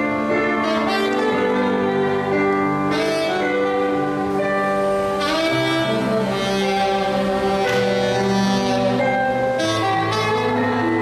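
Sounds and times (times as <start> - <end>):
electronic keyboard chords and bass: 0.0 - 11.0
saxophone slow melody: 0.0 - 11.0.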